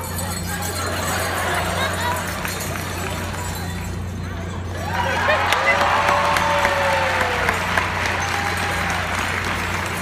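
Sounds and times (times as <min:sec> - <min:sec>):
drawn-out cheer: 0:04.7 - 0:10.0
audience applauding: 0:04.9 - 0:10.0.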